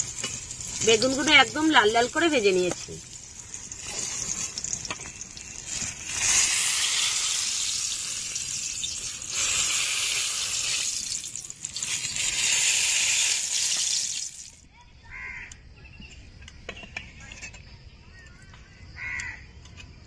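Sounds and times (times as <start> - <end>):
eggplant sizzling in hot oil: 0.0 - 14.6.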